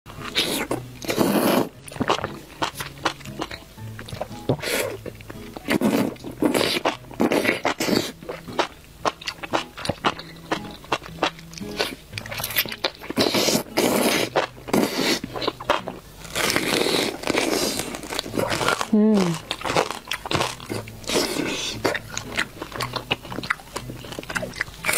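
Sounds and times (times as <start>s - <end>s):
background music with low held notes: 0.1s - 24.9s
person slurping and chewing: 0.1s - 24.9s.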